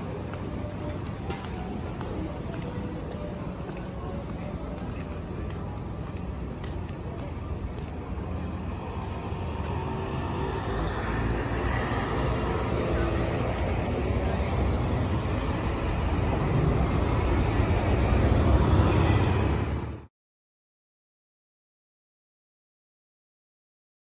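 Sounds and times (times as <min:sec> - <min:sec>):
bus driving by: 0:00.0 - 0:20.1
passing cars: 0:00.0 - 0:20.1.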